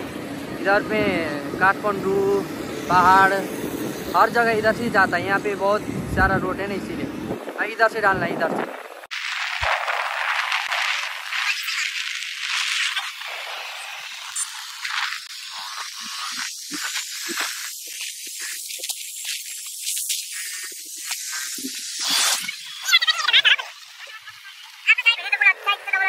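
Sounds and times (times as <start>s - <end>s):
wind rushing over microphone: 0.0s - 11.6s.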